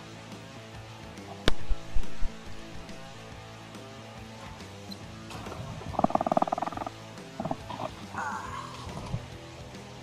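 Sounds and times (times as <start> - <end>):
background music: 0.0 - 10.0
fish croaking grunt: 5.9 - 9.2.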